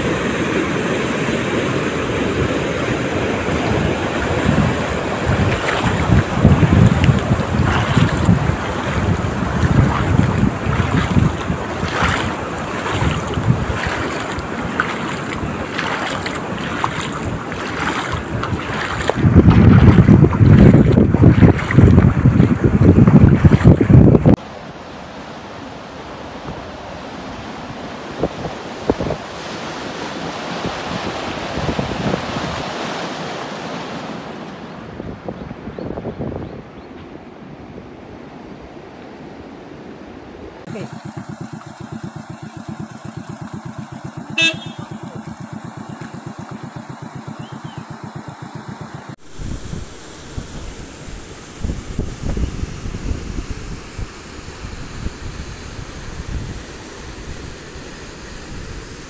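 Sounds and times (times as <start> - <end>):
floodwater rushing: 0.0 - 24.4, 40.6 - 59.0
wind buffeting microphone: 2.0 - 24.4, 34.8 - 37.8, 40.6 - 59.0.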